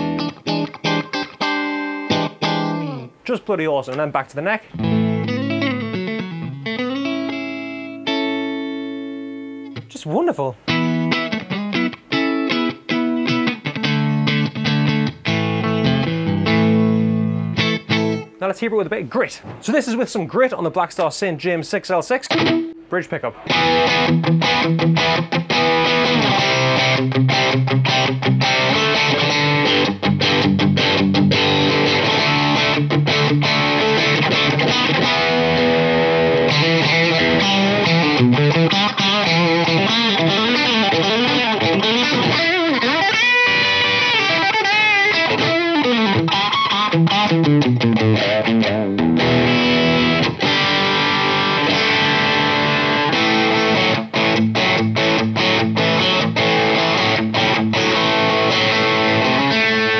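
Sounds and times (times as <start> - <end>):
overdriven electric guitar: 0.0 - 3.2, 4.6 - 10.0, 10.6 - 18.4, 22.2 - 59.9.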